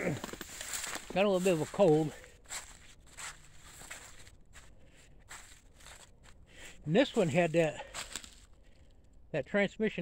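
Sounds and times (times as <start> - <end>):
footsteps on leaves and grass: 0.0 - 8.7.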